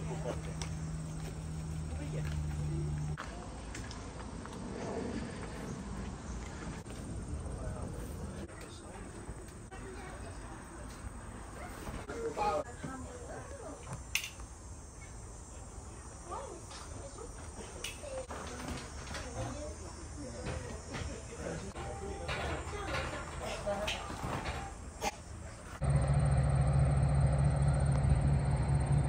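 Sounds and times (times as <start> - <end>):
passing train rumble: 0.0 - 3.2, 25.8 - 29.0
faint voices: 15.1 - 25.8
steady low rumble: 25.8 - 29.0.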